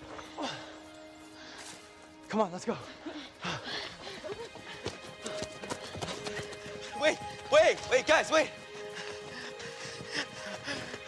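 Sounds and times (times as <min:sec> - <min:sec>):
background music: 0:00.0 - 0:11.0
running footsteps on dirt trail: 0:00.0 - 0:11.0.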